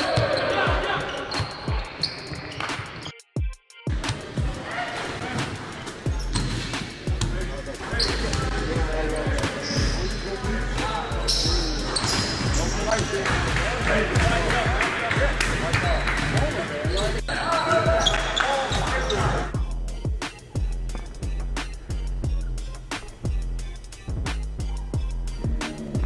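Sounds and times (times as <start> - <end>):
players' voices and chatter: 0.0 - 3.1, 3.9 - 26.0
music with steady bass: 6.1 - 26.0
basketballs bouncing on hardwood: 12.0 - 14.6.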